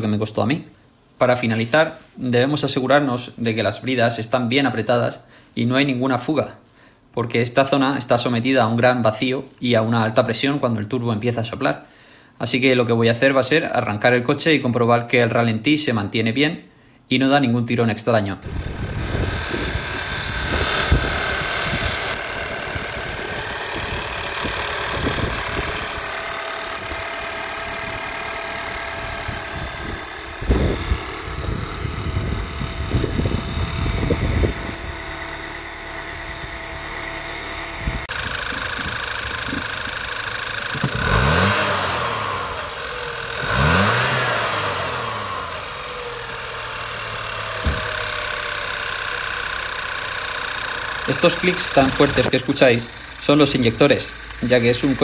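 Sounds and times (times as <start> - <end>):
engine revving: 18.4 - 55.0
car engine idling: 18.5 - 55.0
fuel injectors clicking: 18.5 - 55.0.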